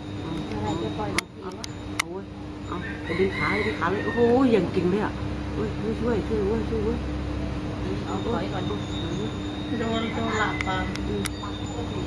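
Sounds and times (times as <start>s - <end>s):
steady low hum: 0.0s - 12.0s
voices: 0.0s - 12.0s
drawn-out pitched call: 2.6s - 4.7s, 8.0s - 12.0s.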